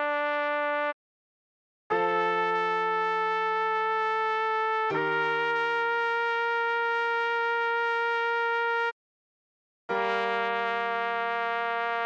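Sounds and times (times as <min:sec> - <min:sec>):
electronic trumpet long note: 0:00.0 - 0:01.0, 0:01.9 - 0:08.9, 0:09.9 - 0:12.0.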